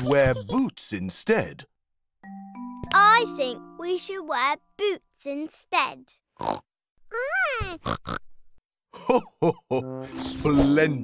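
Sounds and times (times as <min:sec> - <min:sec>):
pig snorts: 0:06.4 - 0:06.6.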